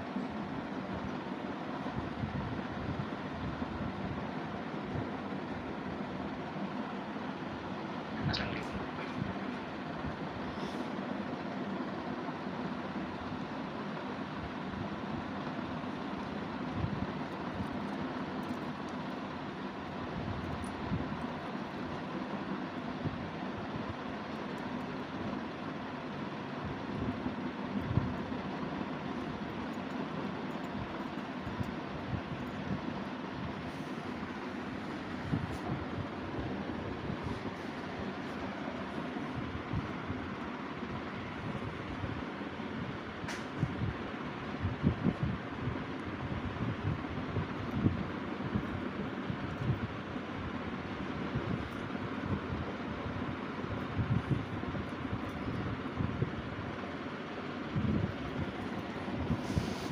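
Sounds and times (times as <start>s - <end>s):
background hiss and rumble: 0.0s - 59.9s.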